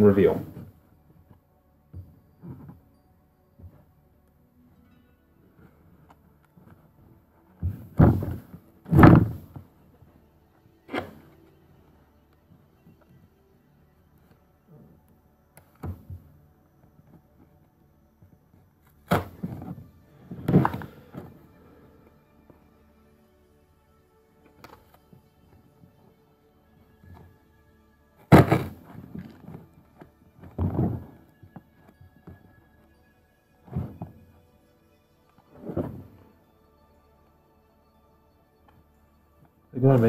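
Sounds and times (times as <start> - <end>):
cardboard box knocks and scrapes: 7.6 - 9.7, 28.3 - 29.5, 30.5 - 31.2.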